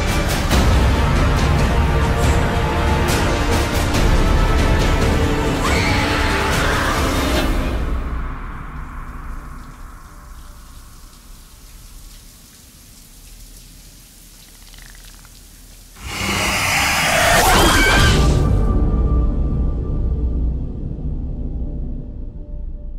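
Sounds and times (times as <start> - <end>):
horror trailer soundtrack: 0.0 - 10.6, 16.0 - 22.9
shower water running: 6.3 - 17.1.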